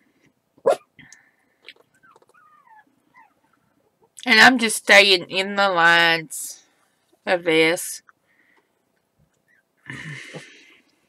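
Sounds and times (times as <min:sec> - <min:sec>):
dog barking: 0:00.6 - 0:00.9
dog whining: 0:01.9 - 0:03.6.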